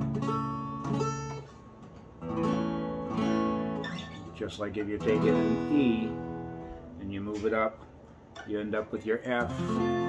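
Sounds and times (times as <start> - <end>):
acoustic guitar chords strummed: 0.0 - 10.0.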